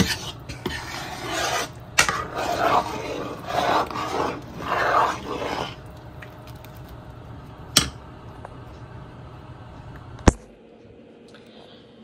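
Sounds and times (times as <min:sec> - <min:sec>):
metal spoon scraping a pot: 0:00.0 - 0:05.9.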